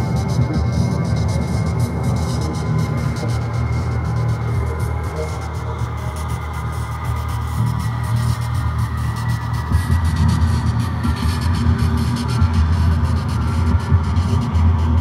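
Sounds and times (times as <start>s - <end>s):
electronic drone music: 0.0s - 15.0s.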